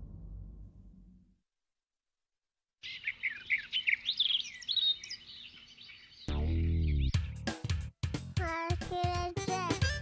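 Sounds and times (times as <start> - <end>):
birds chirping: 2.8 - 7.5.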